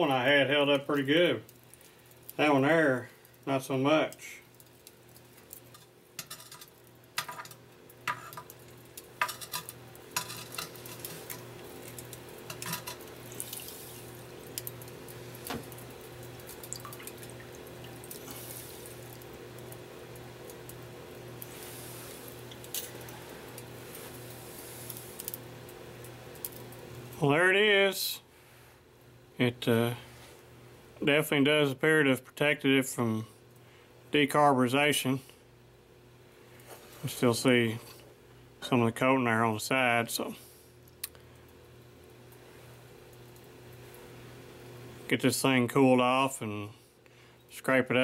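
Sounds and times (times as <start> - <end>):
tongs clinking on iron pot: 5.7 - 8.6, 9.2 - 11.4, 12.5 - 13.1
quench oil hissing: 18.2 - 19.1, 21.4 - 25.3.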